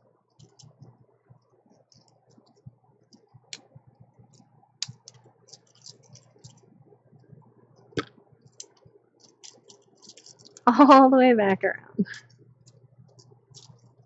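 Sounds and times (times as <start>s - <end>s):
plastic sticks clicking together: 0.4s - 0.9s, 4.3s - 6.6s, 8.0s - 11.0s, 12.7s - 13.9s.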